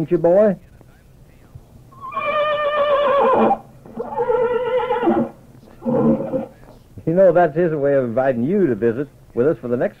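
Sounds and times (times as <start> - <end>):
horse whinnying: 1.9 - 6.6.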